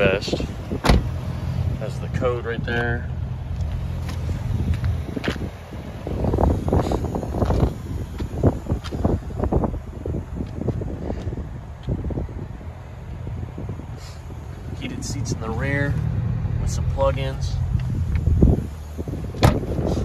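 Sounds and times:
wind rumble on microphone: 0.0 - 20.0
car door opening: 0.6 - 1.5, 19.0 - 20.0.

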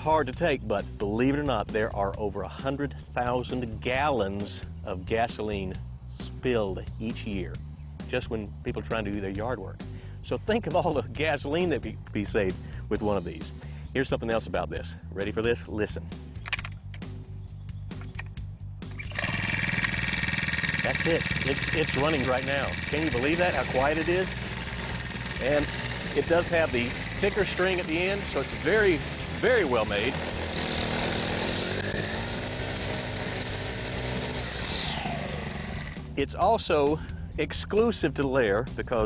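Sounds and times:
string trimmer engine running: 19.0 - 36.2.

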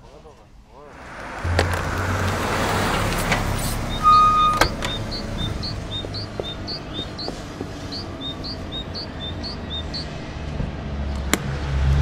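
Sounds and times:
cartoon van driving up: 0.8 - 12.0
short high squeal: 2.5 - 5.2.

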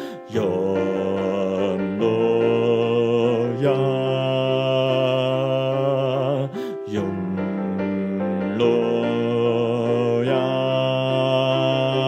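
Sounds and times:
mixed choir singing: 0.4 - 6.0, 8.0 - 12.0.

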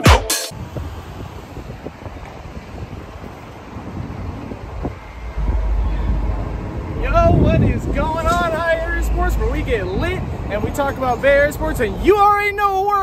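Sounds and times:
train rail hiss and rumble: 0.5 - 13.0
wind buffeting microphone: 0.5 - 13.0.

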